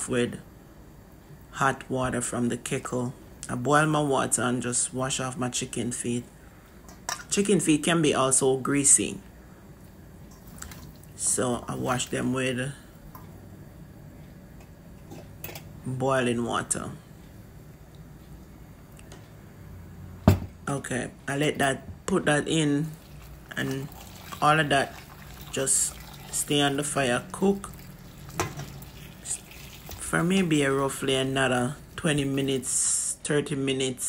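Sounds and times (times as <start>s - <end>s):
low steady hum: 0.0s - 34.0s
hot water pouring into bowl: 10.2s - 12.5s, 22.6s - 33.0s.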